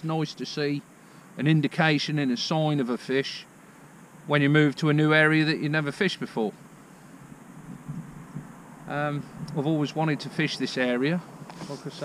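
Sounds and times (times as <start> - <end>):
man speaking: 0.0 - 0.8, 1.4 - 3.5, 4.3 - 6.6, 8.9 - 12.0
faint steady low noise: 0.0 - 12.0.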